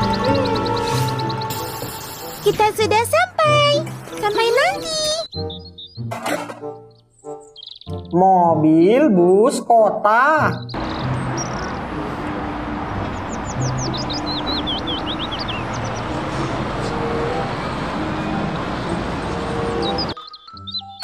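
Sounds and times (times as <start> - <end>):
street traffic noise: 0.0 - 5.3, 10.6 - 21.0
bird chirping: 0.0 - 8.2, 10.4 - 11.9, 13.0 - 17.2, 19.7 - 21.0
bus driving past: 10.8 - 20.2.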